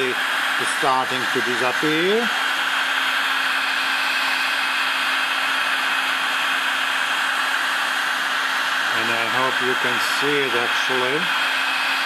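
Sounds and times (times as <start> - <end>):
heat gun fan blowing: 0.0 - 12.0
steady high whine: 0.0 - 12.0.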